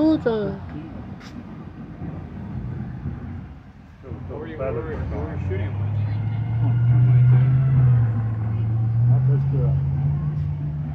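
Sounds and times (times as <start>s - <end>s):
bus engine droning: 0.0s - 10.9s.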